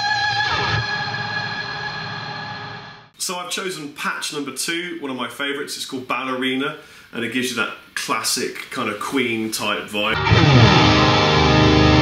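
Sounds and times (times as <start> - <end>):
electric guitar chord ringing: 0.0 - 3.0, 10.2 - 12.0.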